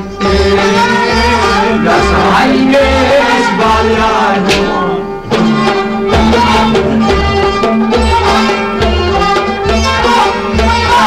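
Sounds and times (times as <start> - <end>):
man singing folk song: 0.0 - 5.0
instrumental accompaniment: 0.0 - 11.0.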